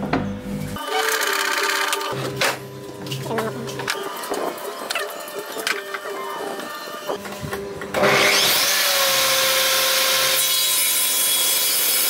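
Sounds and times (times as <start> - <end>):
saw running hum: 7.9 - 12.0
table saw cutting wood: 7.9 - 12.0.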